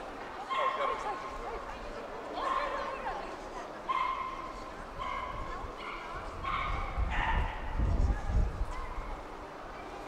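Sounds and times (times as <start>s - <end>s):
people talking: 0.0s - 7.1s, 7.7s - 10.0s.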